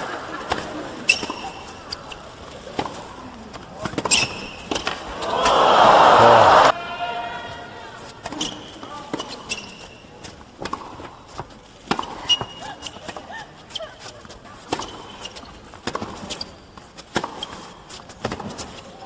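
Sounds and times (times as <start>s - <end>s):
shoe squeaks on court: 0.5s - 5.3s, 8.2s - 10.9s, 11.9s - 19.0s
racket hitting tennis ball: 2.6s - 5.6s, 8.2s - 13.2s, 15.8s - 18.8s.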